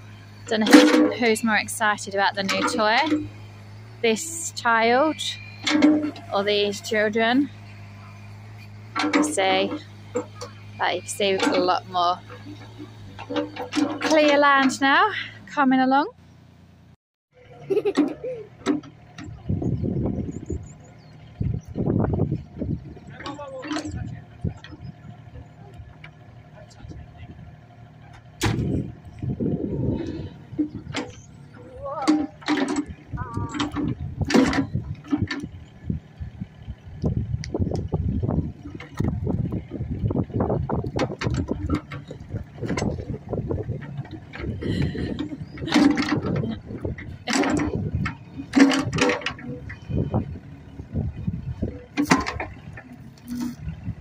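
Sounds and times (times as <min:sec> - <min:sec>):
excavator engine rumbling: 0:00.0 - 0:54.0.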